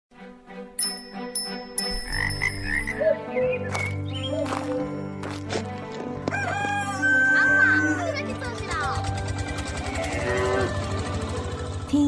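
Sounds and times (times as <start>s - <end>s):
frogs croaking: 1.8s - 4.6s
rooster crowing: 6.2s - 7.9s.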